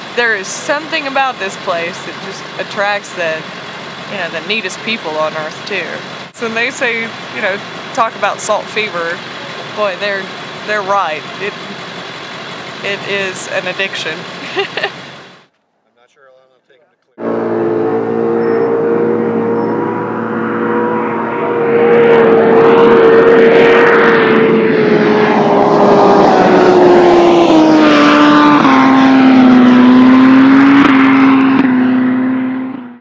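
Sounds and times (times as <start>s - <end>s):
motorcycle engine at high speed: 0.0s - 15.6s, 17.2s - 33.0s.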